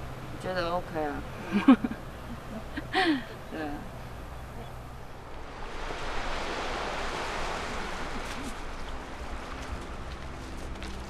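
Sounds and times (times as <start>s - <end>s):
waves washing on pebble beach: 5.4s - 10.5s.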